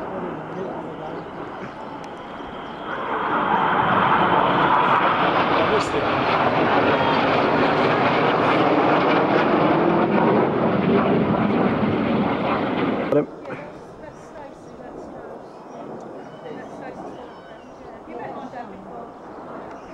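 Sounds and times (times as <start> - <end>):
jets passing overhead: 0.0 - 19.9.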